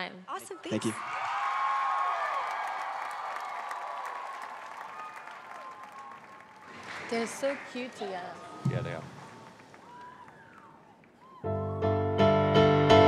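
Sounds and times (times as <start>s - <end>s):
audience applauding and cheering: 0.8s - 11.6s.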